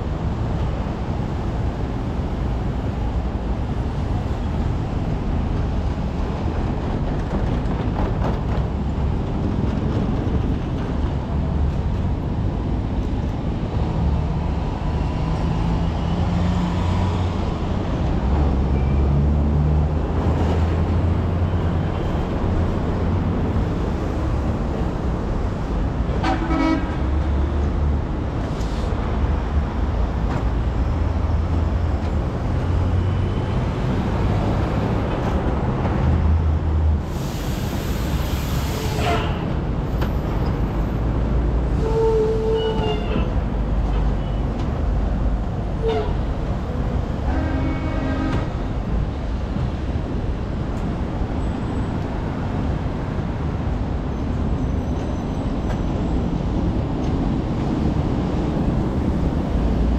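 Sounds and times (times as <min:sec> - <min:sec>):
heavy road traffic rumbling: 0:00.0 - 0:59.9
vehicle horns tooting: 0:26.2 - 0:27.0.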